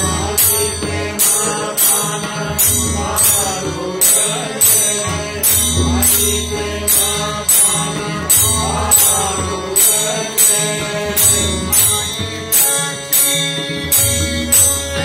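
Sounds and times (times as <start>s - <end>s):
hand cymbals clashing: 0.0s - 15.0s
harmonium chords: 0.0s - 15.0s
tabla drumming: 0.0s - 15.0s.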